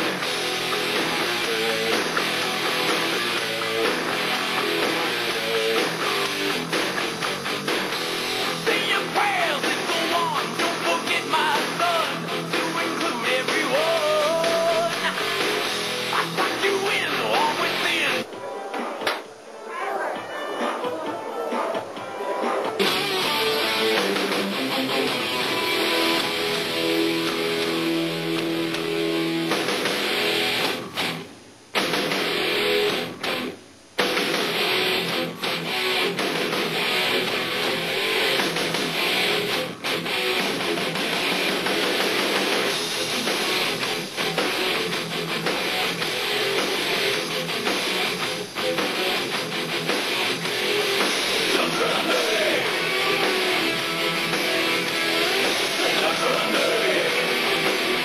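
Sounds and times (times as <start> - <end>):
electric guitar strumming: 0.0 - 18.3, 22.6 - 58.0
drum kit: 0.0 - 19.3, 20.2 - 58.0.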